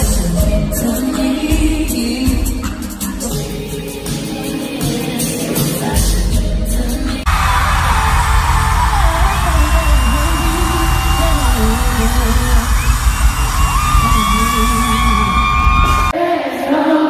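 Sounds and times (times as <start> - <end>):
woman singing live: 0.0 - 7.3, 7.9 - 13.2, 13.8 - 17.0
band with heavy bass: 5.9 - 16.2
audience yelling and cheering: 7.3 - 16.2.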